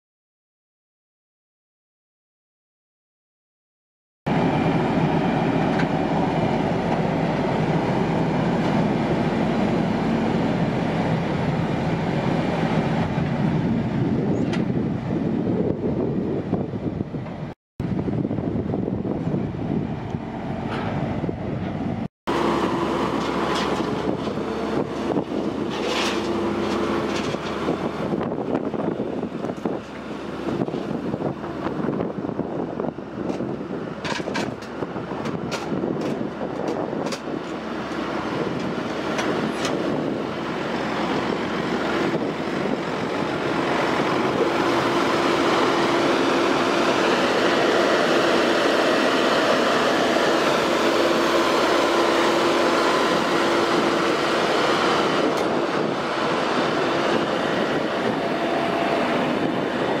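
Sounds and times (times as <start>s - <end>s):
diesel truck engine rumbling: 4.3s - 60.0s
steady whine: 4.3s - 60.0s.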